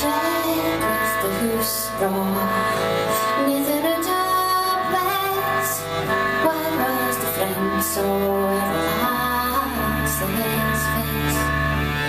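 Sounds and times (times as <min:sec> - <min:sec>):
woman singing: 0:00.0 - 0:11.5
accordion: 0:00.0 - 0:12.0.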